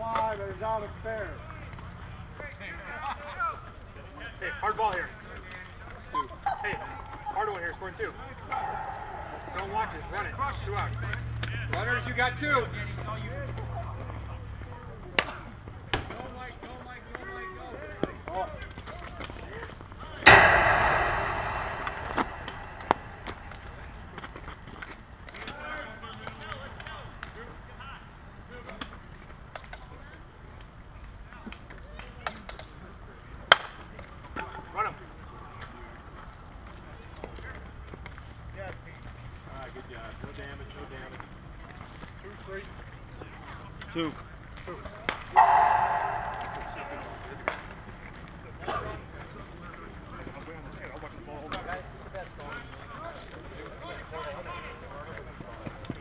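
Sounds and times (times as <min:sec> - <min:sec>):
loud sharp crack: 0:08.5 - 0:10.6, 0:20.3 - 0:24.6, 0:45.4 - 0:48.2
sharp knocks: 0:20.3 - 0:24.3, 0:45.4 - 0:48.0.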